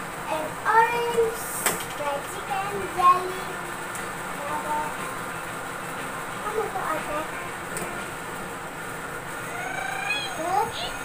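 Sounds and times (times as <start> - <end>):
children calling out: 9.4 - 11.0.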